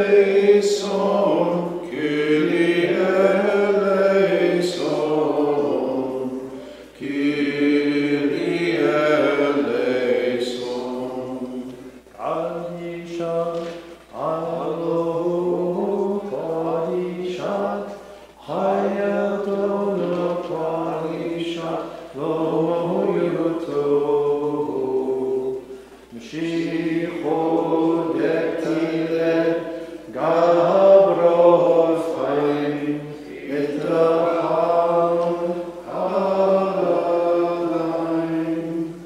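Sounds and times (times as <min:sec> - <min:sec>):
voices chanting a hymn: 0:00.0 - 0:39.0.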